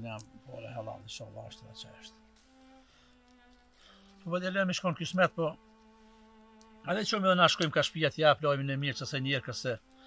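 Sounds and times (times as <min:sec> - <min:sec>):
man talking: 0:00.0 - 0:02.2, 0:04.2 - 0:05.6, 0:06.8 - 0:09.8
faint low buzzing drone: 0:00.0 - 0:09.0.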